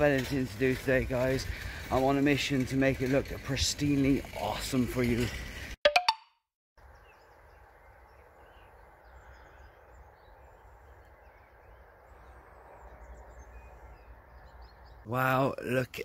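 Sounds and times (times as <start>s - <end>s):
outdoor background noise: 0.0s - 5.8s, 6.8s - 16.0s.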